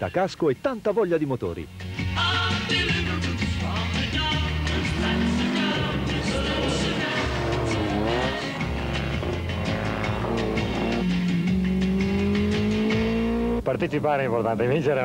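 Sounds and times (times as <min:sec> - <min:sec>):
background music with steady beat: 0:00.0 - 0:14.0
car engines revving: 0:03.6 - 0:15.0.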